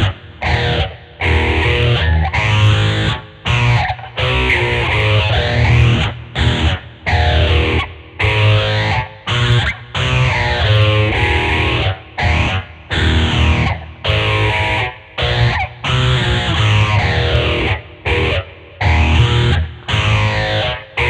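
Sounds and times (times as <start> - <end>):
distorted electric guitar riff: 0.0 - 21.0.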